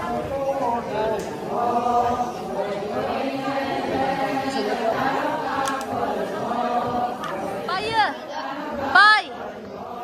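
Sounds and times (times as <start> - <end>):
group of voices chanting: 0.0 - 10.0.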